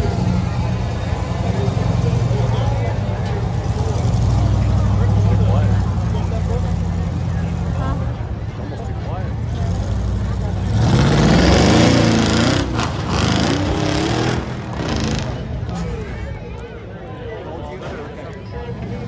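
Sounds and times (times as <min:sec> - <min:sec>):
monster truck engine revving: 0:00.0 - 0:08.4, 0:09.2 - 0:16.2.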